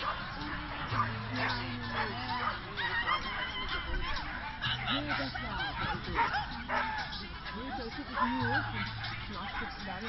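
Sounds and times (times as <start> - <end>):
crowd talking: 0.0 - 10.0
dogs barking and yipping: 0.0 - 10.0.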